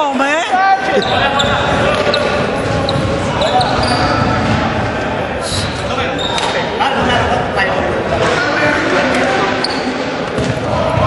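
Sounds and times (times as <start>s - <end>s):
voices echoing in a gym: 0.0s - 11.0s.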